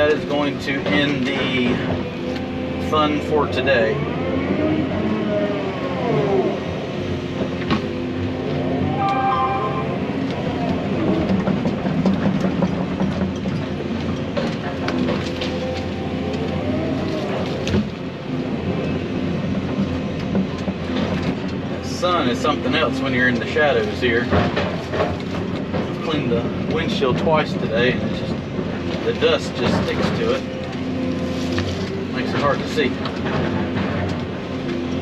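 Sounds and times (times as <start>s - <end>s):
excavator engine and hydraulics: 0.0s - 35.0s
hydraulic whine rising and falling: 8.2s - 11.2s.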